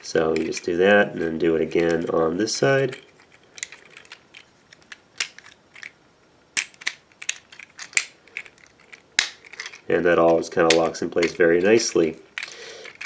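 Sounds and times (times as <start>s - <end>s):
plastic parts clicking into place: 2.9s - 6.0s, 6.6s - 11.4s, 12.3s - 13.0s.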